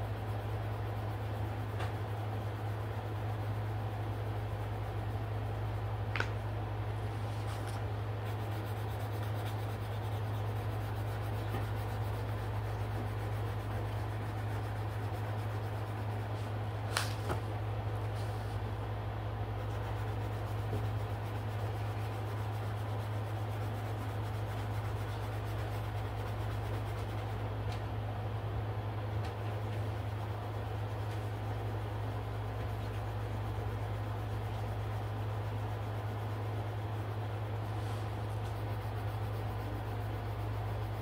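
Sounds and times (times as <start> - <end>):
pencil rubbing on paper: 7.1 - 17.1, 19.5 - 27.4, 29.5 - 41.0.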